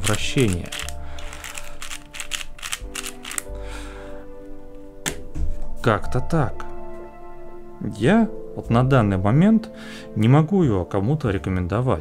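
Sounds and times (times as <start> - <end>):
plastic clicks of puzzle cube turning: 0.0 - 3.5
background music with held tones: 0.0 - 12.0.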